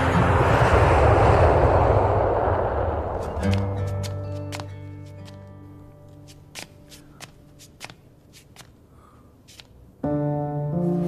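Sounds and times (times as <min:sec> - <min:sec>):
low background music: 0:10.0 - 0:11.0.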